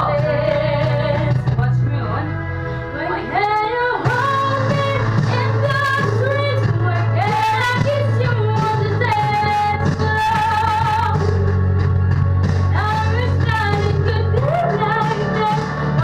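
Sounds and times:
musical accompaniment: 0.0s - 16.0s.

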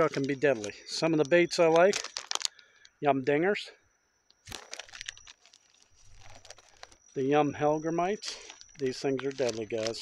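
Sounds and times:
plastic packages crinkling: 0.0s - 2.6s, 4.4s - 7.0s, 8.3s - 10.0s.

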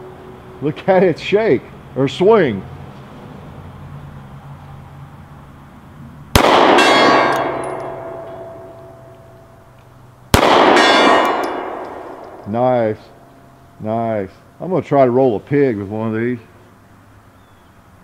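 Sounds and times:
pistol shots: 6.4s - 9.3s, 10.3s - 12.5s
steel plate clanging and ringing: 6.8s - 9.6s, 10.8s - 12.6s.

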